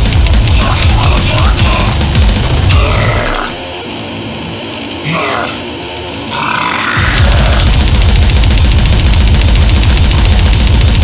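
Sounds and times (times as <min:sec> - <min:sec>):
blast-beat drumming: 0:00.0 - 0:03.2, 0:07.0 - 0:11.0
heavily distorted guitars: 0:00.0 - 0:11.0.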